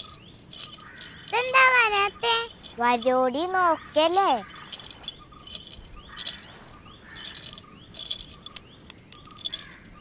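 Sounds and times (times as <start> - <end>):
light metallic jingling: 0.0 - 10.0
high clear clink: 7.2 - 10.0.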